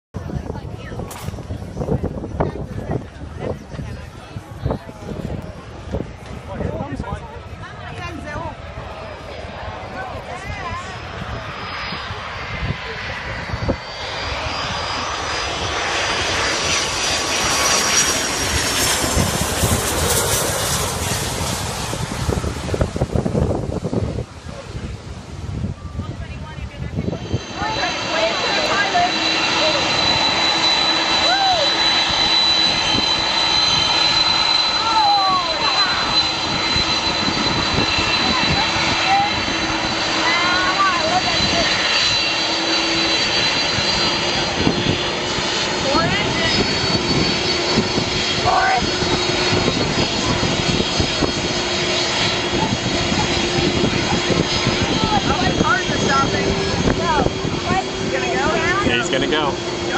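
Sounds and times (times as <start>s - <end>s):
jet engines whining: 0.2s - 59.9s
voices of onlookers: 0.2s - 59.9s.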